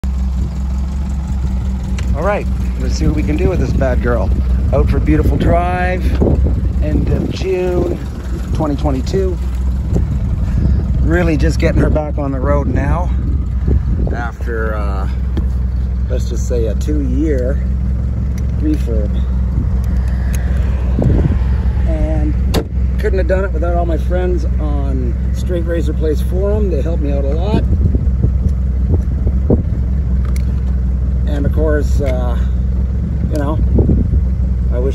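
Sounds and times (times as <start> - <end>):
car engine idling: 0.0 - 34.9
wind and road noise: 0.0 - 34.9.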